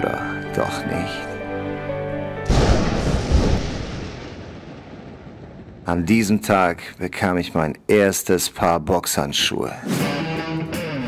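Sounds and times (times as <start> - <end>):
music: 0.0 - 3.1, 9.8 - 11.0
deep cinematic boom: 2.5 - 5.9.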